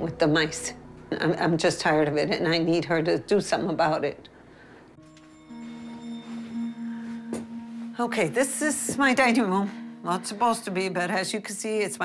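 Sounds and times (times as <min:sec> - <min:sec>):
music of ringing held tones: 0:05.0 - 0:12.0.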